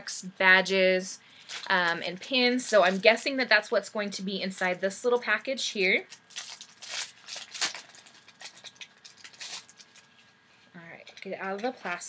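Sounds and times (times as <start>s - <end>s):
plastic packet crinkling: 1.3s - 3.8s, 6.0s - 10.2s.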